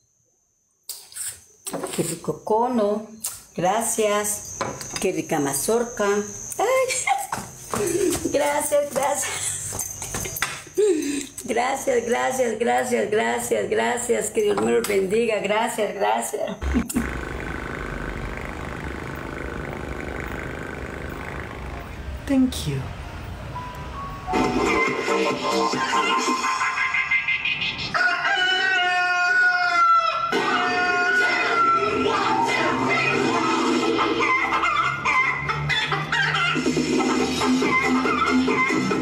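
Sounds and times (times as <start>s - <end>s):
cat purring: 16.6s - 22.2s.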